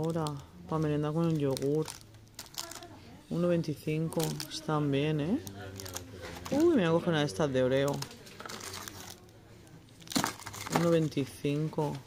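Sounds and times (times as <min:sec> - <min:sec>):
plastic wrappers crinkling: 0:00.0 - 0:03.1, 0:03.8 - 0:07.1, 0:07.7 - 0:12.0.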